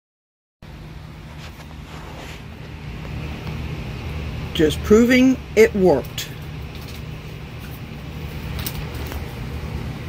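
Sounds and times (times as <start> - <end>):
low rumble with hiss: 0.6 - 10.0.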